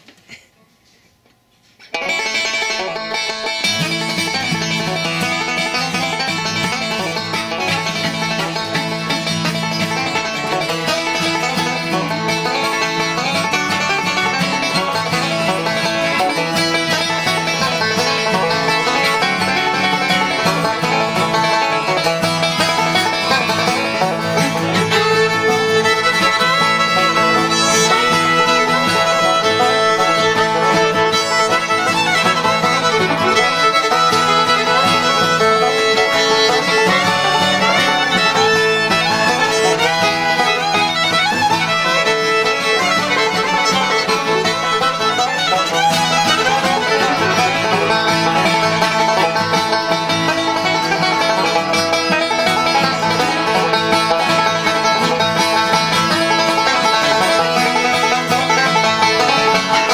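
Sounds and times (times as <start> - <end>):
banjo picking: 1.8 - 59.9.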